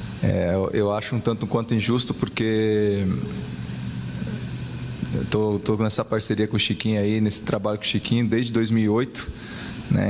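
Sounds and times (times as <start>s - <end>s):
low hum: 0.0s - 7.4s.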